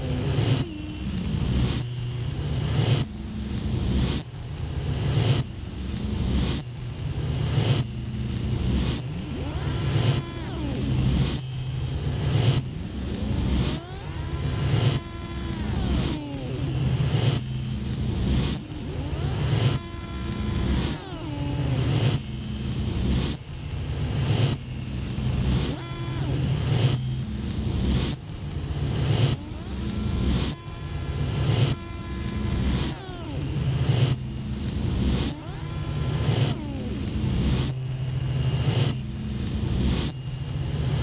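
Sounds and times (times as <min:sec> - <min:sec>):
low droning electronic pulse: 0:00.0 - 0:41.0.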